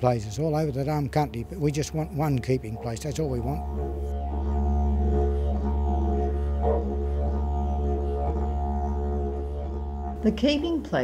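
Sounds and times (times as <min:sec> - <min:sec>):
didgeridoo drone: 0:00.0 - 0:11.0.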